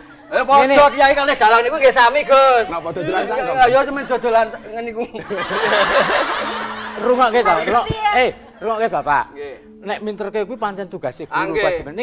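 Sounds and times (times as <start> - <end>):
studio audience laughing: 2.7 - 7.9.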